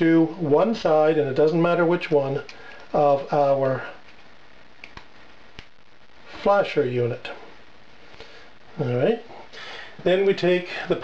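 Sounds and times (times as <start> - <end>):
faint room noise: 0.0 - 11.0.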